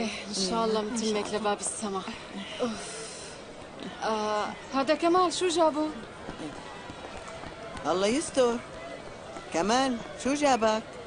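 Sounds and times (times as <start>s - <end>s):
hard-soled footsteps on cobblestones: 4.8s - 11.0s.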